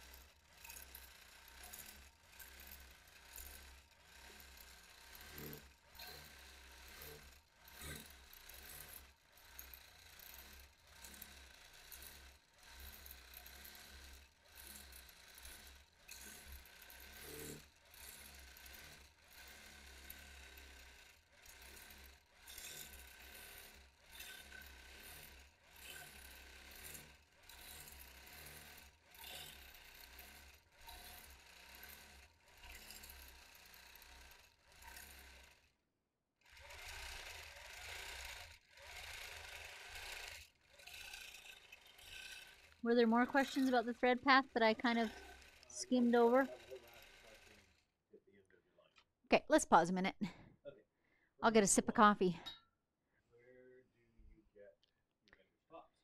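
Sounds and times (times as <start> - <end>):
quilting machine rattle: 0.0 - 35.7, 36.5 - 47.8.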